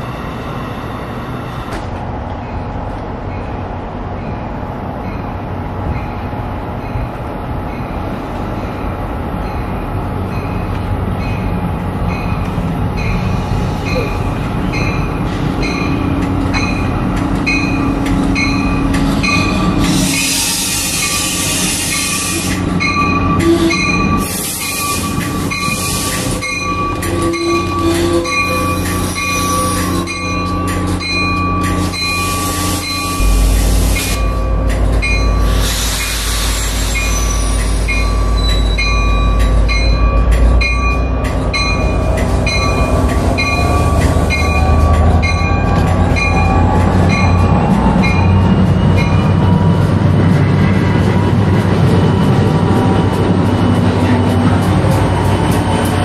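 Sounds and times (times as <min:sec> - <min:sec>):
train braking: 0:12.1 - 0:56.0
wheel squeal: 0:19.5 - 0:30.2, 0:35.6 - 0:39.1
bell ringing steadily: 0:22.8 - 0:35.5
deep engine rumble: 0:33.2 - 0:35.7.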